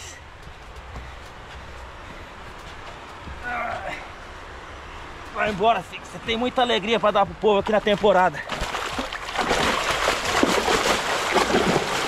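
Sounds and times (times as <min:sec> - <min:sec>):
fish splashing in water: 0:08.4 - 0:12.0.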